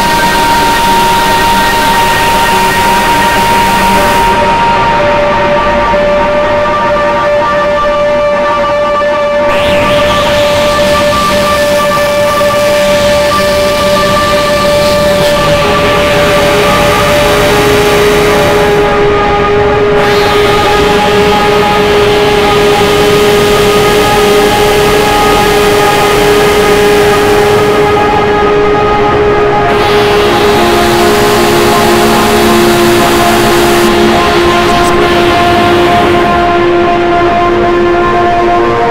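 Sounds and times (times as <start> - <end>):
dense wash of noise: 0.0 - 7.0, 9.4 - 38.9
dark electronic synthesizer drone: 0.0 - 38.9.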